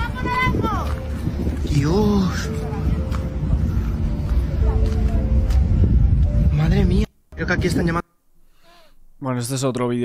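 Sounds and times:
wind buffeting microphone: 0.0s - 8.0s.

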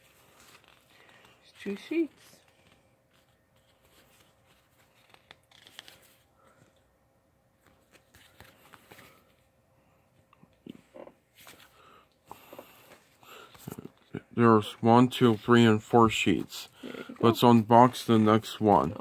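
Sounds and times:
sticker sheets rustling: 0.0s - 6.9s, 17.2s - 19.0s.

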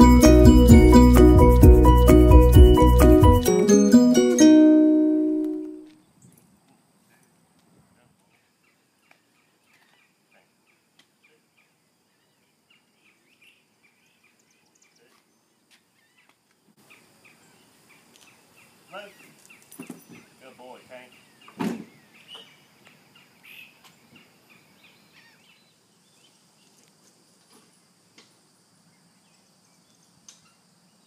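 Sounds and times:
person speaking: 3.1s - 5.9s
birds chirping: 8.3s - 26.4s.

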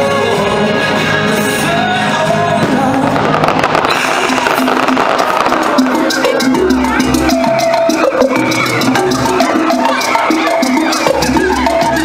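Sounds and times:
loud show music: 0.0s - 12.0s
fireworks bursting and crackling: 2.4s - 6.6s.

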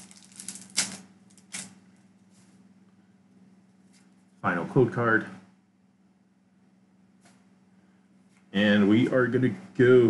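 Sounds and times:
foil pack rustling: 0.0s - 1.7s
low steady hum: 0.0s - 10.0s.

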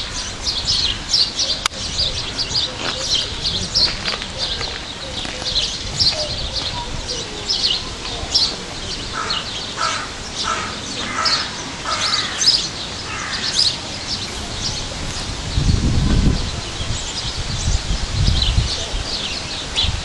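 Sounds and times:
birds chirping: 0.0s - 20.0s
harsh bird calls: 0.0s - 20.0s.

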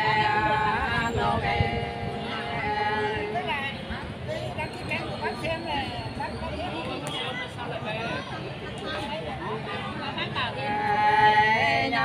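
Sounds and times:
woman singing folk song: 0.0s - 3.5s
crowd chatter: 0.0s - 12.0s.

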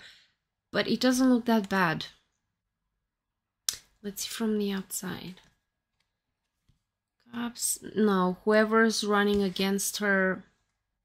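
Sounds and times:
person speaking: 7.3s - 10.4s.

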